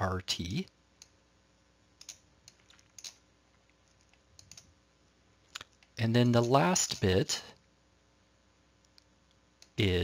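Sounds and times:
computer clicks and taps: 0:02.0 - 0:04.7.

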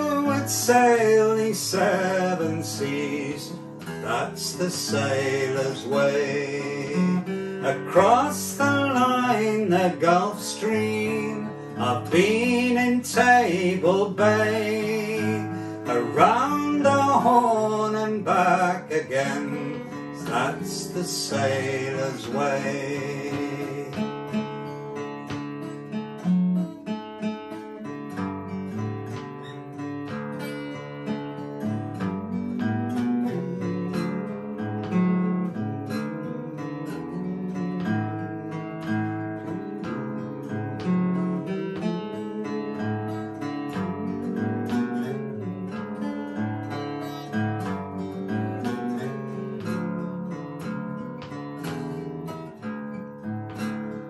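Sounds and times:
acoustic guitar picking: 0:00.0 - 0:54.0.

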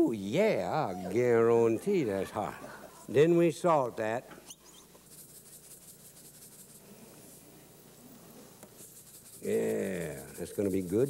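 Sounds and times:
salt shaker rattling: 0:05.0 - 0:06.9, 0:08.8 - 0:11.0.

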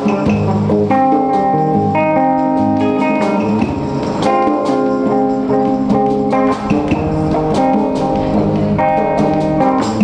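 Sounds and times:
drum kit: 0:00.0 - 0:10.0
electric guitar chords: 0:00.0 - 0:10.0
hand drums: 0:00.0 - 0:10.0.

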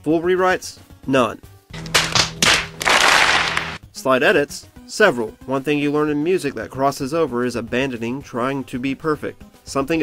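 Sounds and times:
sharp cracks: 0:01.8 - 0:03.8.

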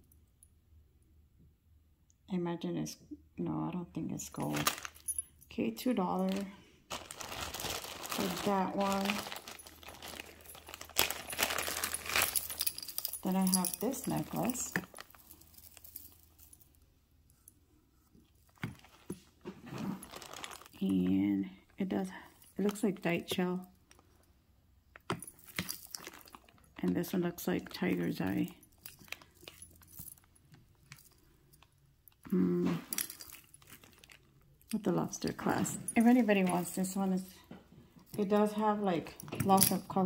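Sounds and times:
jewelry clinking: 0:04.3 - 0:17.6, 0:25.0 - 0:37.2, 0:38.0 - 0:40.0
metal jewelry clack: 0:08.1 - 0:16.8, 0:39.2 - 0:39.9.

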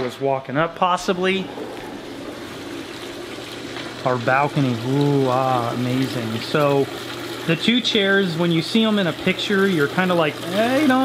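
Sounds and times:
fountain water splashing: 0:01.2 - 0:11.0.

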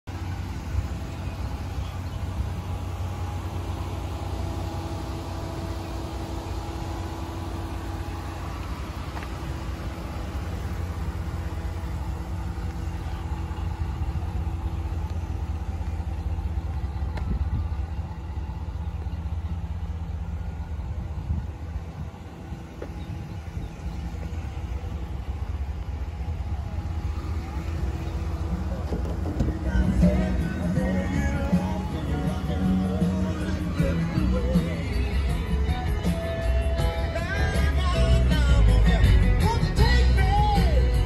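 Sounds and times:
pickup truck engine idling: 0:00.0 - 0:41.0.

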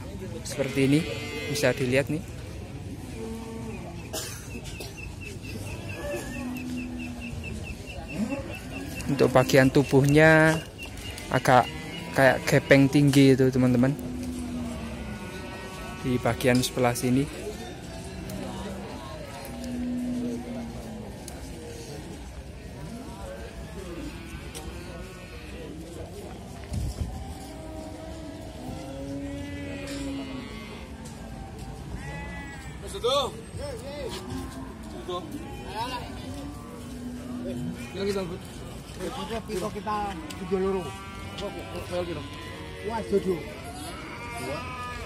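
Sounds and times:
distant overlapping voices: 0:00.0 - 0:45.0
market chatter: 0:00.0 - 0:45.0
livestock bleating: 0:00.5 - 0:02.0, 0:10.5 - 0:17.2, 0:23.9 - 0:25.8, 0:27.4 - 0:31.3, 0:32.0 - 0:32.8, 0:34.2 - 0:45.0.

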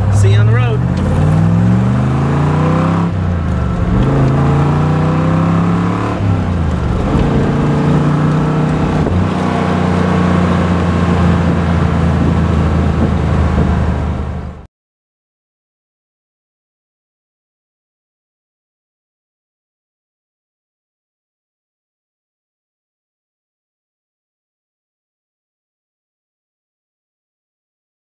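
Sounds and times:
car engine accelerating hard: 0:00.0 - 0:14.7.

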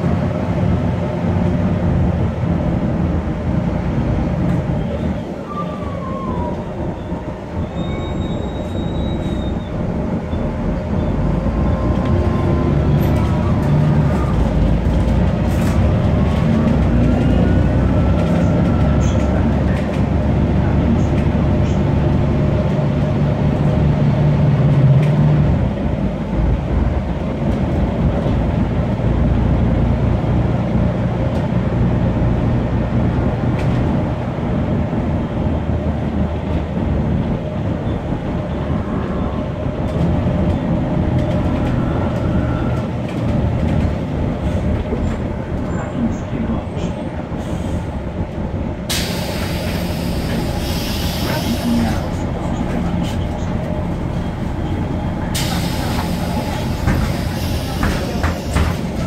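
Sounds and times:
bus diesel engine running: 0:00.0 - 0:59.0
loud hiss: 0:48.9 - 0:51.8.

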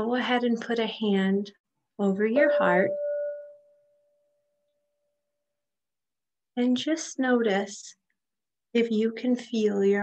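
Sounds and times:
clear ringing tone: 0:02.3 - 0:04.8.

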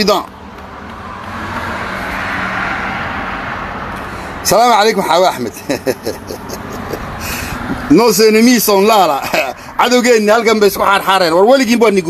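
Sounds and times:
vehicle rushing hiss: 0:01.0 - 0:04.5, 0:06.8 - 0:07.9.

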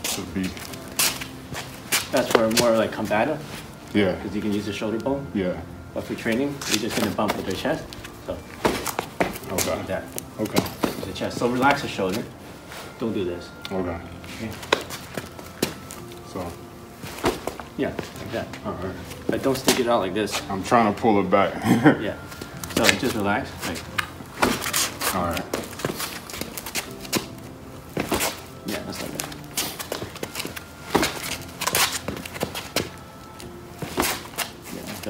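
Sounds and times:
footsteps and scuffs on pavement: 0:00.0 - 0:03.7, 0:06.1 - 0:13.1, 0:13.7 - 0:20.6, 0:22.3 - 0:35.0
jacket fabric rustling: 0:00.0 - 0:05.0, 0:06.0 - 0:21.3, 0:22.1 - 0:35.0
bodies thumping together: 0:08.5 - 0:09.8, 0:24.0 - 0:25.0, 0:27.9 - 0:33.0.

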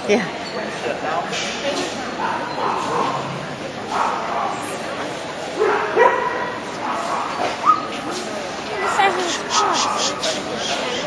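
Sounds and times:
people talking: 0:06.6 - 0:11.0.

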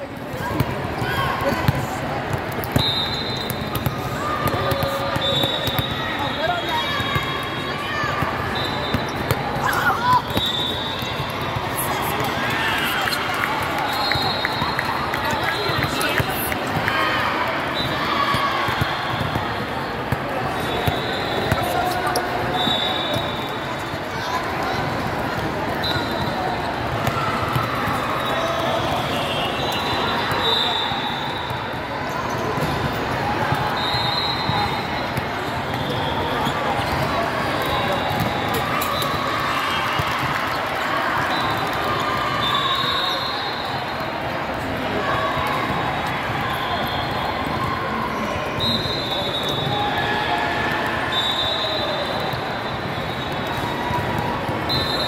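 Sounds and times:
sneaker squeaks on court floor: 0:02.6 - 0:07.6, 0:08.2 - 0:16.5, 0:17.7 - 0:24.0, 0:25.8 - 0:39.2.

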